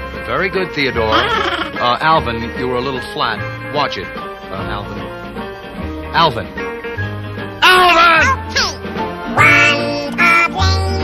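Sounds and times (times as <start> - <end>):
music with bass notes: 0.0 - 11.0
high-pitched cartoon voices: 1.0 - 1.8, 7.6 - 8.8, 9.4 - 11.0.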